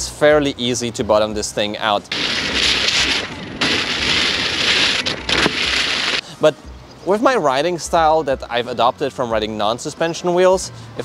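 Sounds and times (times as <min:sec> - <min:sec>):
tyre hissing through puddles: 0:02.1 - 0:06.3.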